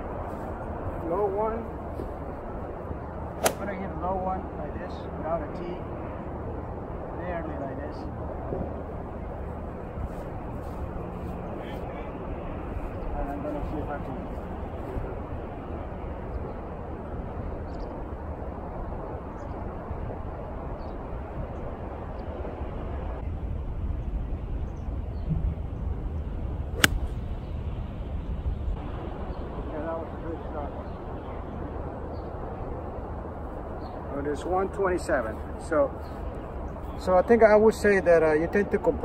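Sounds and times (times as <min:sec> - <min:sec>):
golf club striking ball: 0:03.4 - 0:03.7, 0:26.8 - 0:27.2.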